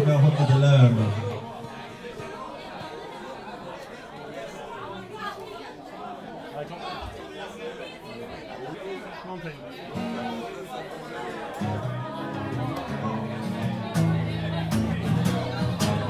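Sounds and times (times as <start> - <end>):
crowd chatter in large room: 0.0 - 16.0.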